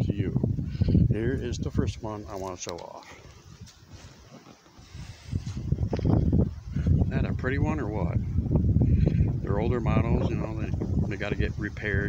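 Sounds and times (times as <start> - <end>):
wind buffeting microphone: 0.0 - 4.2, 4.8 - 12.0.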